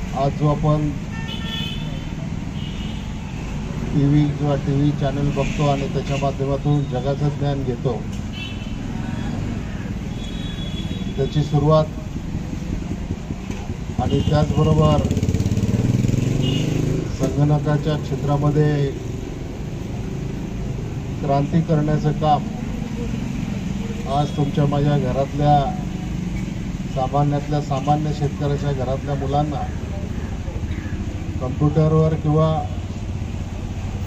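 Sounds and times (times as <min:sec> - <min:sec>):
street traffic: 0:00.0 - 0:34.0
vehicle horn honking: 0:01.1 - 0:03.1, 0:10.1 - 0:11.2.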